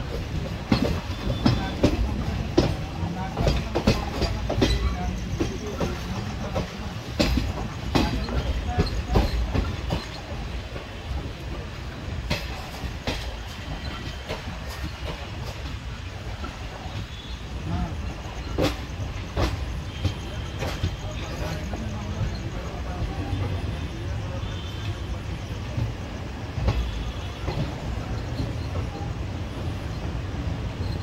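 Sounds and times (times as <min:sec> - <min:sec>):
train rumble: 0:00.0 - 0:31.0
wheels clacking over rail joints: 0:00.0 - 0:31.0.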